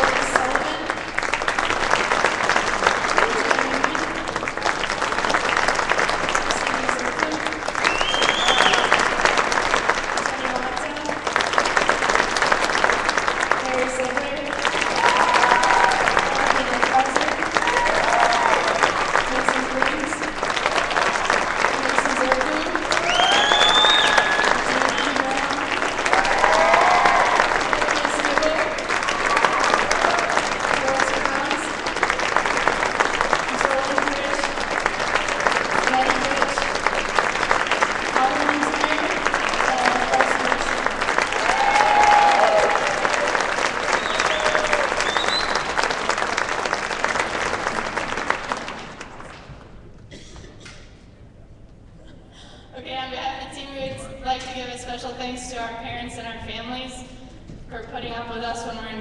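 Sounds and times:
crowd applauding: 0.0 - 50.2
shouts and whoops: 15.0 - 16.2, 17.6 - 19.0, 23.0 - 24.7, 26.1 - 27.7, 41.4 - 45.2.

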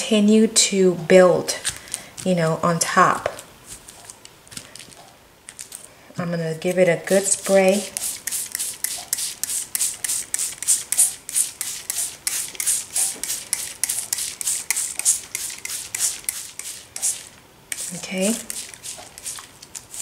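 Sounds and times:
spray bottle squirting: 7.4 - 20.0.

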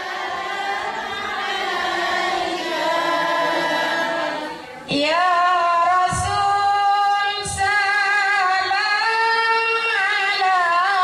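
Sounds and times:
women singing in unison: 0.0 - 11.0.

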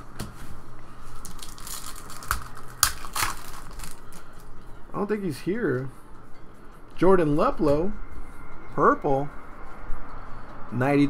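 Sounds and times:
foil wrappers crinkling: 0.9 - 4.5.

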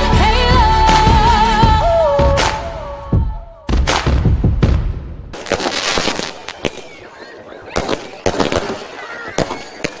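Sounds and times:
fireworks bangs: 3.8 - 10.0
fireworks crackling: 5.4 - 10.0.

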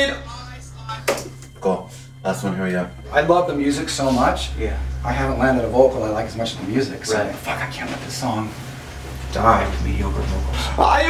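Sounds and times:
low studio hum: 0.0 - 11.0.

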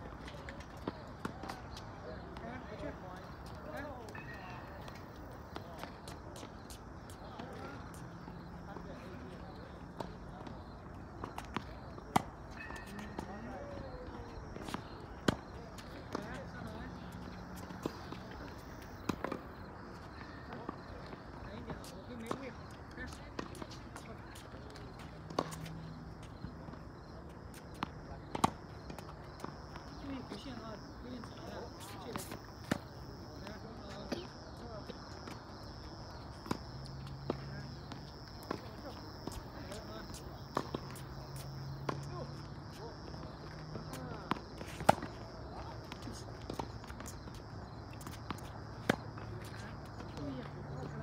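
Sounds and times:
tennis balls hit with rackets: 27.5 - 30.5, 36.0 - 51.0.

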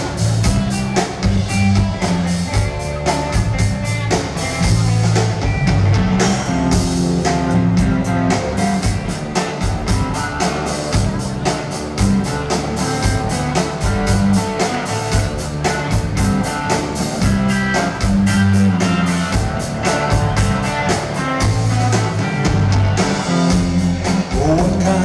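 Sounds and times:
bass guitar: 0.0 - 25.0
drums: 0.0 - 25.0
electric guitars: 0.0 - 25.0.

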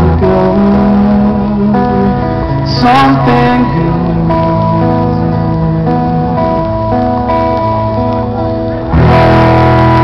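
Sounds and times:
band playing with acoustic guitar: 0.0 - 10.0
loud ringing guitar chord: 0.0 - 10.0.

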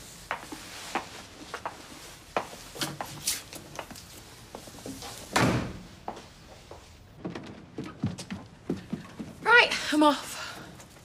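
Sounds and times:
door shutting with heavy thud: 5.3 - 5.9.

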